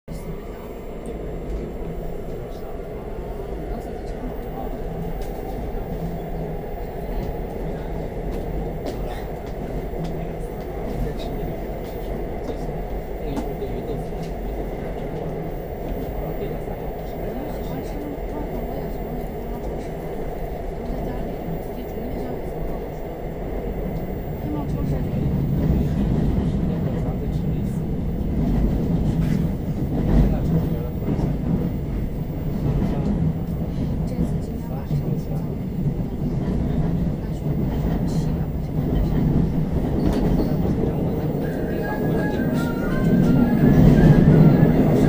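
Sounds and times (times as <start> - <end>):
subway train running: 0.1 - 45.0.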